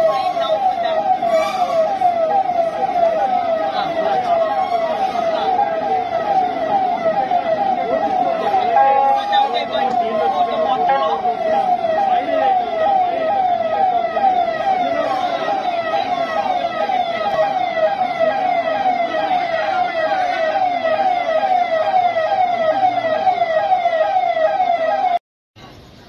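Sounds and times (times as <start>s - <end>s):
electronic siren: 0.0s - 25.2s.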